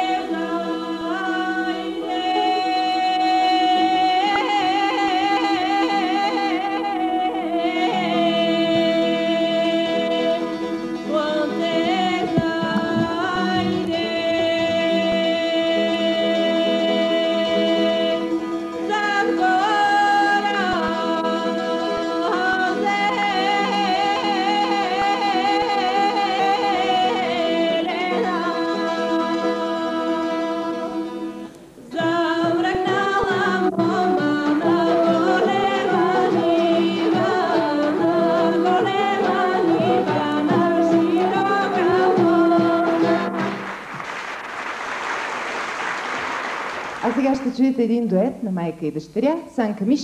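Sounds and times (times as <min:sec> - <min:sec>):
woman singing folk song: 0:00.0 - 0:43.5
folk band playing: 0:00.0 - 0:44.2, 0:46.2 - 0:47.8.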